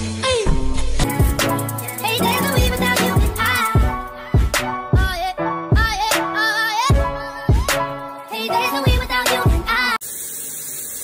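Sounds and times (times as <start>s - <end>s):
shower running: 0.0s - 4.0s, 7.5s - 11.0s
music with singing and a beat: 0.0s - 10.0s.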